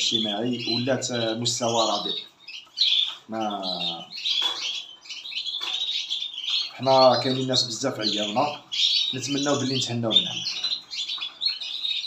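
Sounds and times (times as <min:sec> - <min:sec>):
man's voice: 0:00.0 - 0:02.2, 0:03.3 - 0:04.1, 0:06.8 - 0:08.6, 0:09.2 - 0:10.7
birds chirping and twittering: 0:00.0 - 0:12.0.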